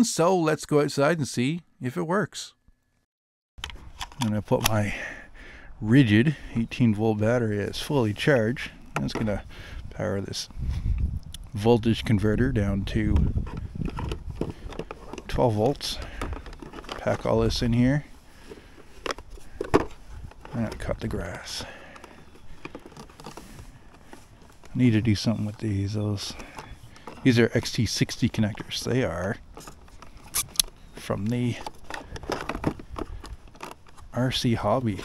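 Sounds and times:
clicks and knocks of connectors: 3.6 - 4.8, 29.6 - 34.0.

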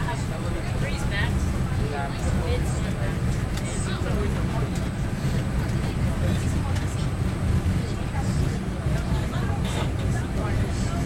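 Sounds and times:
subway train wheels rumbling: 0.0 - 11.0.

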